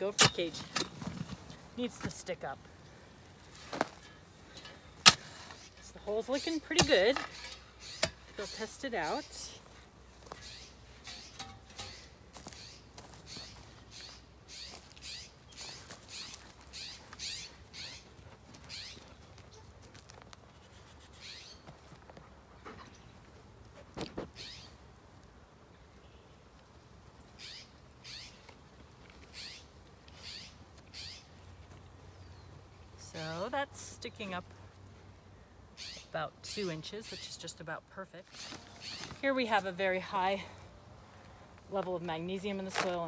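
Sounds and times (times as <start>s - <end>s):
high-pitched animal calls: 10.4s - 19.7s, 20.5s - 21.6s, 27.4s - 28.4s, 29.3s - 31.3s, 35.8s - 36.2s.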